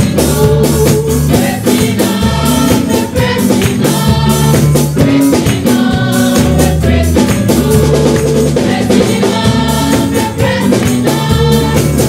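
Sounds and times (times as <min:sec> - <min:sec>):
band bass and drums: 0:00.0 - 0:12.0
gospel choir singing: 0:00.0 - 0:12.0.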